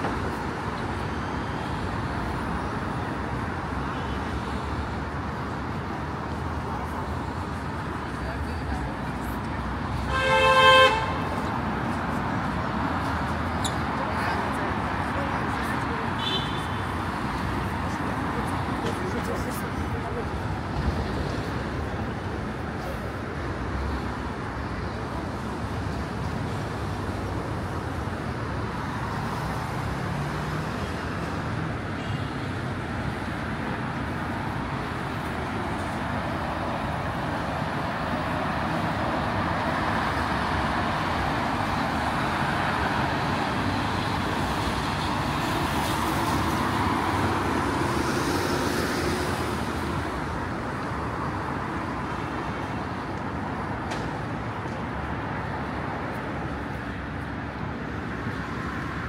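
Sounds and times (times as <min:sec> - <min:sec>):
city road traffic: 0:00.0 - 0:59.0.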